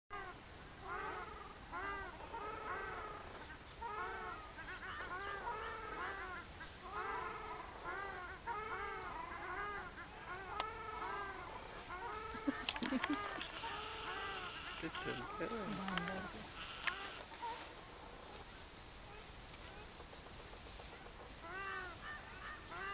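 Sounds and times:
ducks honking: 0:03.9 - 0:17.6
sharp clicks: 0:12.6 - 0:13.7, 0:15.8 - 0:17.2.

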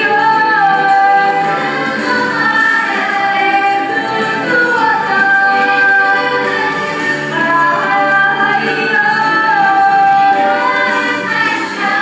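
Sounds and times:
musical accompaniment: 0:00.0 - 0:12.0.

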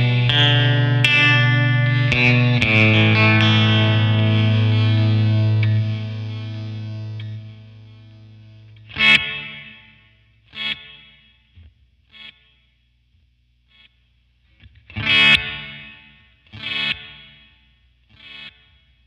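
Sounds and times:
electric guitar chords with delay: 0:00.0 - 0:11.2, 0:14.6 - 0:18.8.

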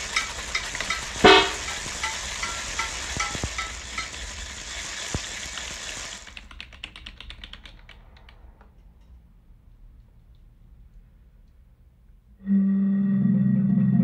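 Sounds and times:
crackling hissing texture: 0:00.0 - 0:11.7
ticking pitched blips: 0:01.0 - 0:01.8
loud ringing tonal hit: 0:01.2 - 0:01.7.

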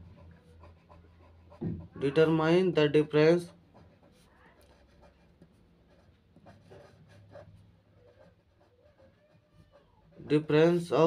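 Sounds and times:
pen scratching on paper: 0:00.0 - 0:11.0.

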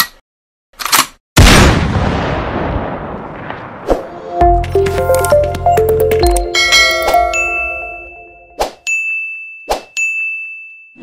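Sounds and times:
synth chord: 0:04.2 - 0:08.6
high notification ding: 0:04.6 - 0:08.6.

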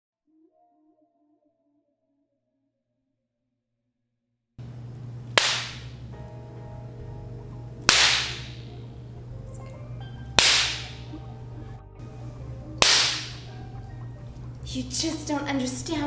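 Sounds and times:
low steady hum: 0:04.6 - 0:16.0
whip cracks: 0:05.4 - 0:06.0, 0:07.9 - 0:08.7, 0:10.4 - 0:11.2, 0:12.8 - 0:13.5.

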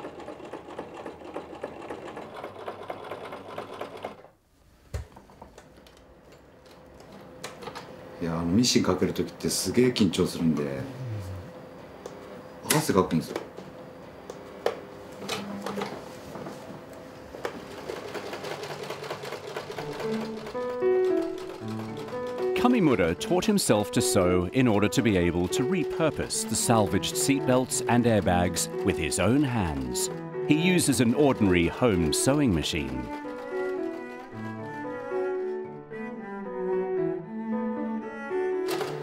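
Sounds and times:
sewing machine stitching: 0:00.0 - 0:04.4, 0:17.5 - 0:35.6
music: 0:19.4 - 0:39.0.

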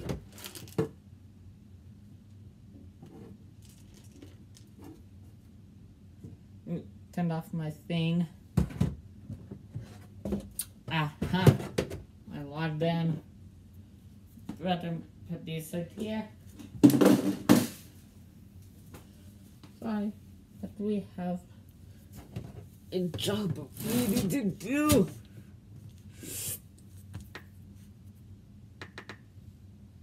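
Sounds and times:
steady low hum: 0:00.9 - 0:30.0.

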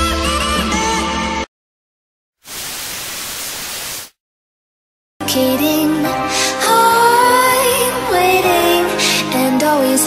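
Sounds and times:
white-noise static hiss: 0:02.4 - 0:04.2.

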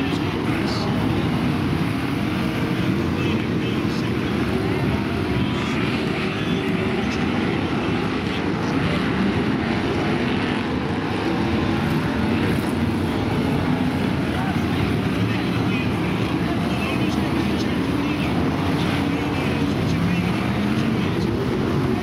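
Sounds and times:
racing car engines: 0:00.0 - 0:22.0.

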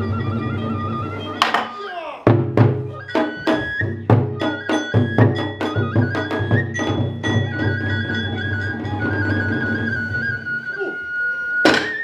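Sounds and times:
bamboo flute long high note: 0:00.0 - 0:01.8, 0:02.8 - 0:12.0.

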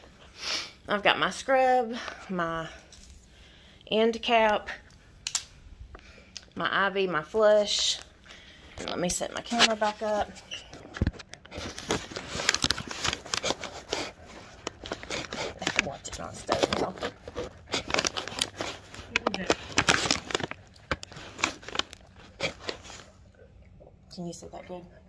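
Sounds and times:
rustling and crinkling handling noise: 0:07.6 - 0:23.8.

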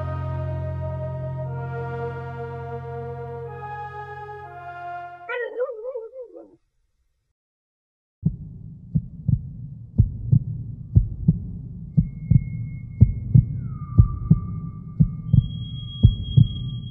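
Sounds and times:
low drone: 0:00.0 - 0:05.2, 0:09.7 - 0:16.9
heartbeat thumps: 0:08.2 - 0:16.7
high steady tones: 0:11.9 - 0:16.9.

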